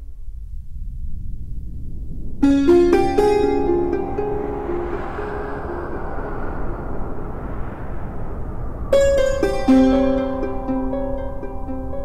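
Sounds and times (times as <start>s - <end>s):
rushing rumbling noise effect: 0.0s - 12.0s
plucked-string music: 2.4s - 6.2s, 9.0s - 12.0s
music notes: 2.4s - 6.9s, 8.9s - 12.0s.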